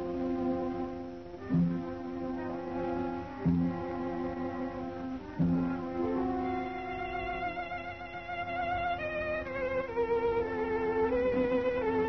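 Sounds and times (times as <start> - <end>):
instrumental accompaniment: 0.0 - 12.0
solo violin melody: 0.0 - 12.0.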